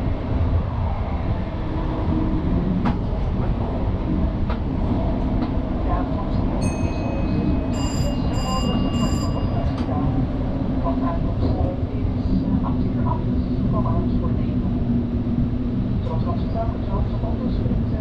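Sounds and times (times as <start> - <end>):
train running rumble: 0.0 - 18.0.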